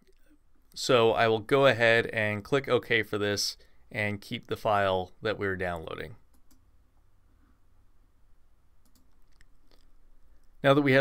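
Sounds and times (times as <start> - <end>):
soft computer mouse clicks: 6.3 - 6.7, 8.8 - 10.6.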